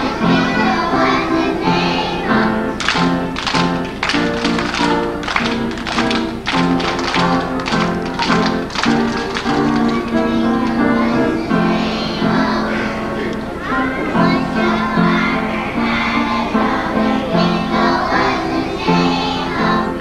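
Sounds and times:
children singing: 0.0s - 20.0s
children clapping hands: 2.7s - 11.7s.

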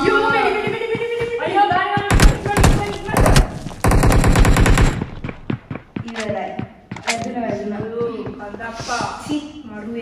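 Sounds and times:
rapid automatic gunfire effect: 2.1s - 5.4s.

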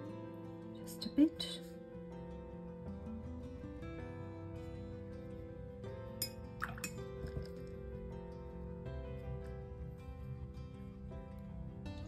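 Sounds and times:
soft background music: 0.0s - 12.0s
paintbrush clinking in water jar: 6.2s - 7.8s.

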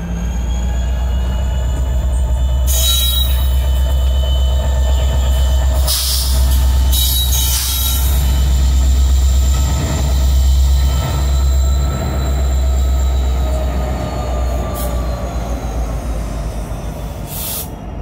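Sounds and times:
high wheel squeal: 0.0s - 18.0s
locomotive engines rumbling: 0.0s - 18.0s.

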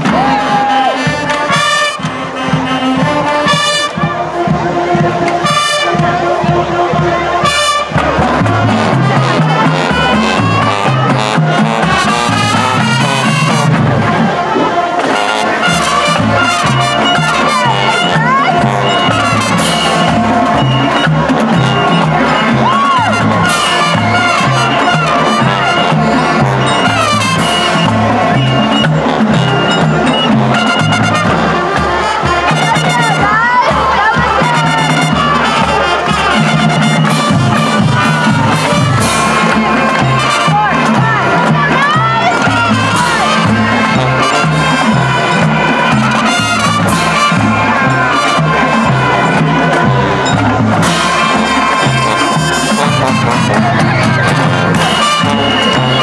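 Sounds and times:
marching band playing: 0.0s - 56.0s.

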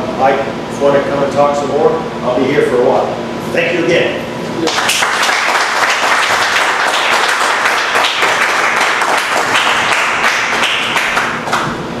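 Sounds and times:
audience applauding: 4.6s - 11.7s.

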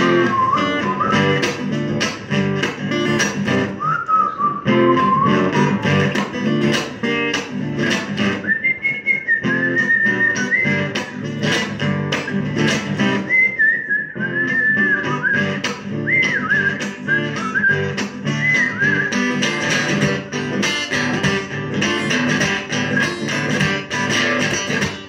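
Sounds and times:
whistled melody: 0.0s - 1.6s, 3.7s - 6.2s, 7.8s - 11.3s, 12.1s - 19.9s, 22.7s - 23.8s
strummed acoustic guitar: 0.0s - 25.0s.

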